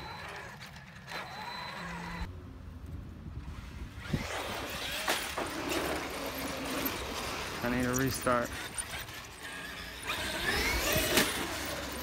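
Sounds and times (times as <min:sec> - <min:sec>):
rc truck motor whine: 0:00.0 - 0:02.3, 0:03.9 - 0:07.6, 0:08.4 - 0:12.0.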